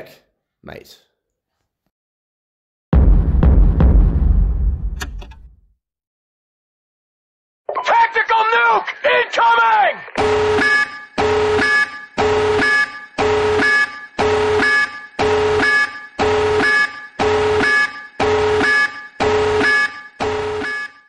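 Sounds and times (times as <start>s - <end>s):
pulsing warning alarm: 10.2s - 21.0s.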